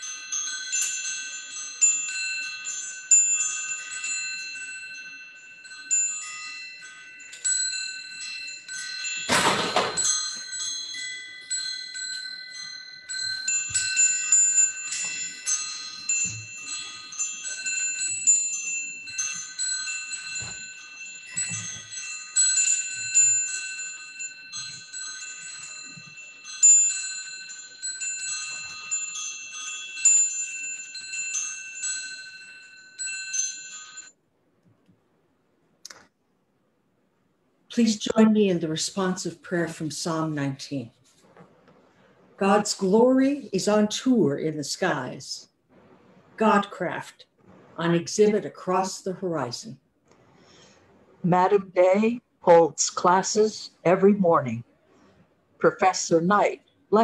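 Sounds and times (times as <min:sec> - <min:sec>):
wind chimes ringing: 0:00.0 - 0:34.2.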